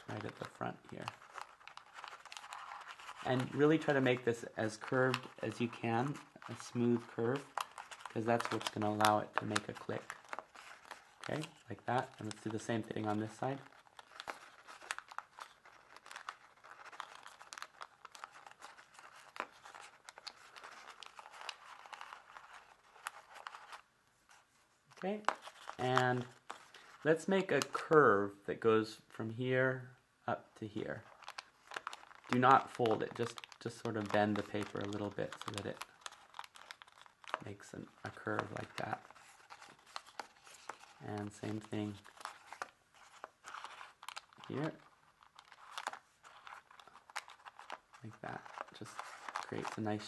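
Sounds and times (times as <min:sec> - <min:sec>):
paper crinkling: 0:00.0 - 0:28.0, 0:30.7 - 0:50.0.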